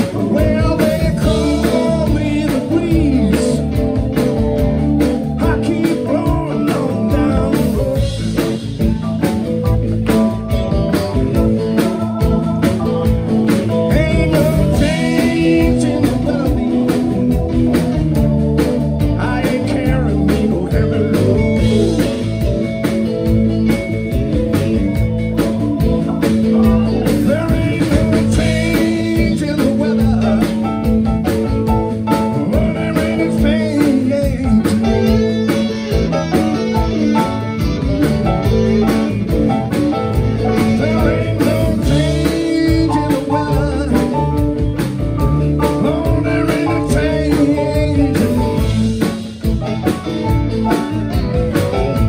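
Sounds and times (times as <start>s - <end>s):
blues band playing live: 0.0s - 52.0s.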